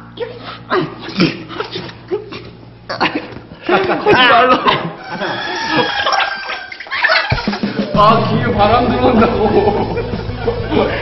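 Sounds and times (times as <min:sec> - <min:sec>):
men laughing hard: 0:02.9 - 0:11.0.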